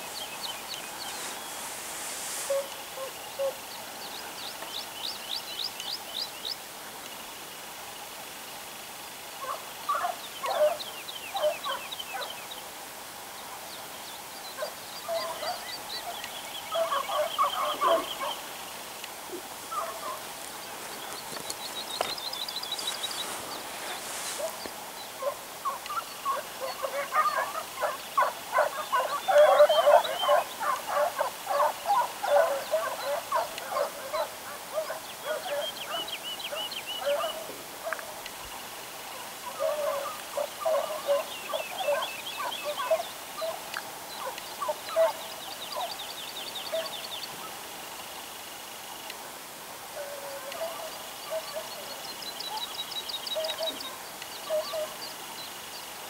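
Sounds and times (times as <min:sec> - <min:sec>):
hounds baying: 0:09.4 - 0:12.4, 0:14.6 - 0:18.5, 0:19.3 - 0:22.1, 0:25.2 - 0:38.1, 0:39.1 - 0:45.9, 0:50.0 - 0:51.9, 0:53.3 - 0:55.0.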